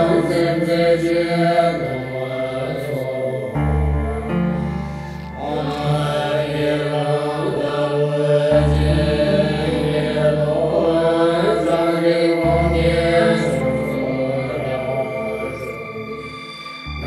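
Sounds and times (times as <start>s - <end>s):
monks chanting: 0.0s - 17.0s
music backing: 0.0s - 17.0s
deep bass tone: 3.6s - 6.1s.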